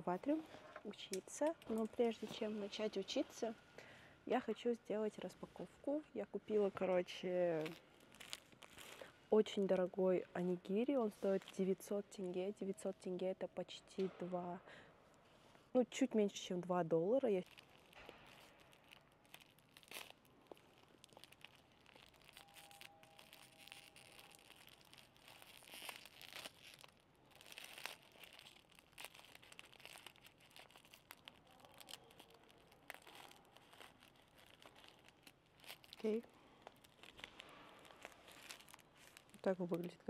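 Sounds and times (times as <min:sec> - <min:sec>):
plastic wrapper crinkling and tearing: 0:06.7 - 0:09.9, 0:17.2 - 0:40.0.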